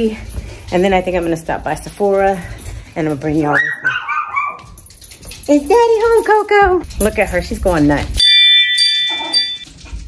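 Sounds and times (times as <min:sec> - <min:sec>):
bright ringing chime: 0:08.2 - 0:09.7.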